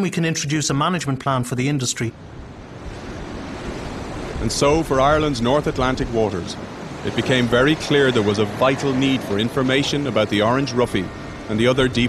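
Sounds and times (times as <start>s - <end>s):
waves breaking and rushing: 0.0s - 12.0s
wind: 0.0s - 12.0s.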